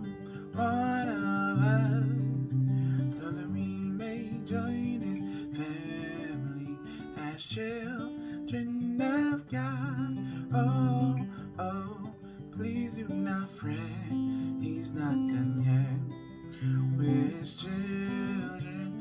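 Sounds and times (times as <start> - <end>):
man singing: 0.0 - 19.0
strummed acoustic guitar: 0.0 - 19.0.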